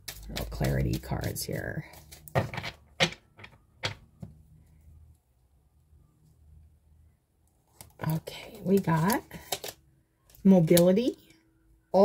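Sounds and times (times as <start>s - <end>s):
cards clicking and tapping: 0.0s - 4.3s, 8.6s - 9.8s.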